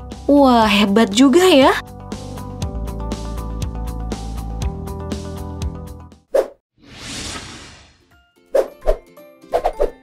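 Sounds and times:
whoosh: 0:06.8 - 0:09.0.

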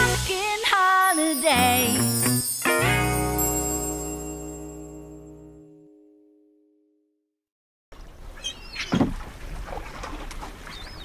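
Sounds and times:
water lapping around boat: 0:08.0 - 0:11.0.

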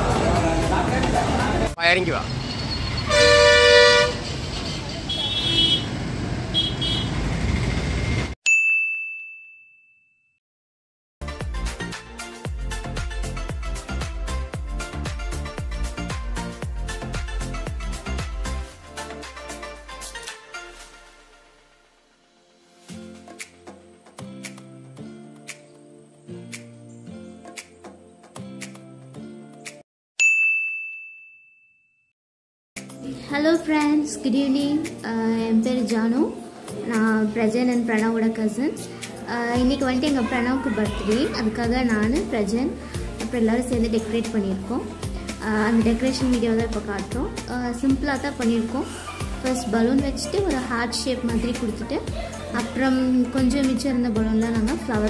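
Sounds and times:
background music: 0:00.0 - 0:01.8, 0:11.2 - 0:29.8, 0:32.8 - 0:55.0
street traffic: 0:00.0 - 0:08.4, 0:33.6 - 0:55.0
vehicle horn honking: 0:02.9 - 0:07.2
bell-like ding: 0:08.4 - 0:10.4, 0:30.2 - 0:32.1.

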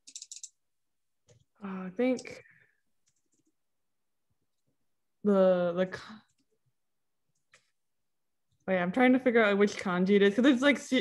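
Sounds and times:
person speaking: 0:01.6 - 0:02.5.

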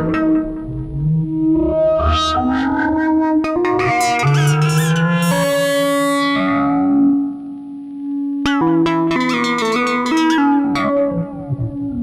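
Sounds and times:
synthesizer sustained notes: 0:00.0 - 0:12.0.

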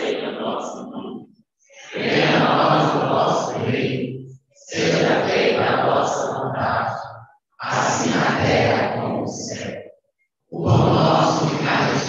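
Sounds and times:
voices praying in unison: 0:00.0 - 0:12.0.

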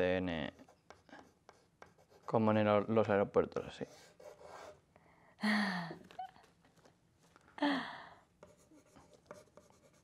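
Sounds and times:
pen scratching on paper: 0:00.5 - 0:02.4, 0:03.8 - 0:04.8, 0:08.4 - 0:10.0.

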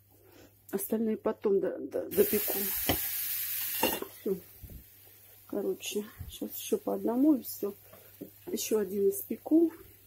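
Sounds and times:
pancake sizzling in a pan: 0:02.1 - 0:10.0.

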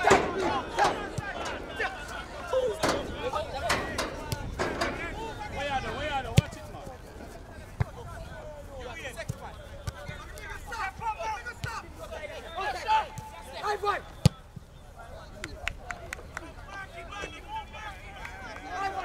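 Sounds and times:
people shouting: 0:00.0 - 0:06.2
sharp thumps: 0:02.8 - 0:06.5.

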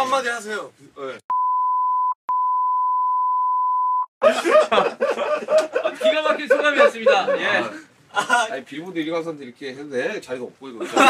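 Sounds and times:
censor bleep: 0:01.3 - 0:04.1.

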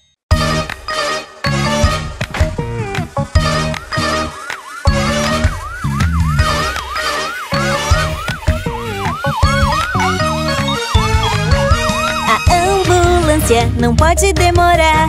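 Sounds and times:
bouncy children's song music: 0:00.3 - 0:15.0
ambulance siren: 0:00.5 - 0:13.3.

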